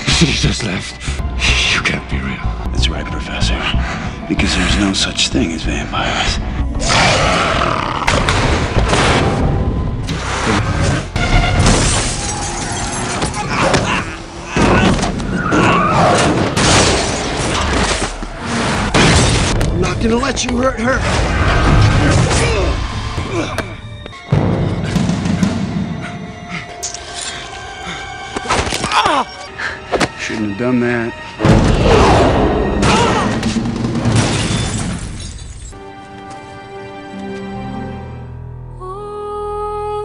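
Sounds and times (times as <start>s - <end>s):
soft film score music: 0.0s - 40.0s
crash with shattering glass: 11.4s - 13.4s, 34.1s - 35.7s.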